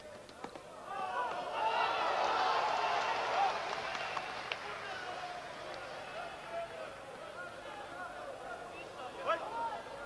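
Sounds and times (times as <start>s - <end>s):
loud shout: 0.8s - 5.4s.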